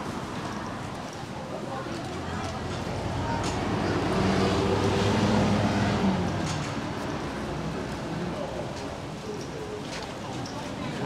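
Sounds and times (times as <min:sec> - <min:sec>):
murmur of crowd: 0:00.0 - 0:11.0.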